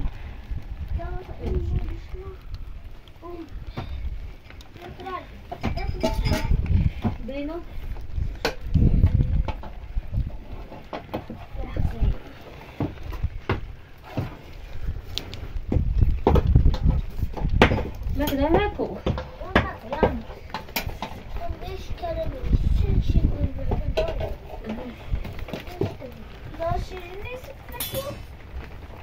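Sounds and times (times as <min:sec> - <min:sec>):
low rumbles: 0:00.0 - 0:29.0
people talking: 0:01.0 - 0:02.4, 0:03.2 - 0:04.0, 0:04.8 - 0:06.6, 0:07.2 - 0:07.7, 0:11.5 - 0:12.4, 0:18.2 - 0:20.4, 0:21.3 - 0:28.3
sharp clicks and knocks: 0:15.1 - 0:22.3.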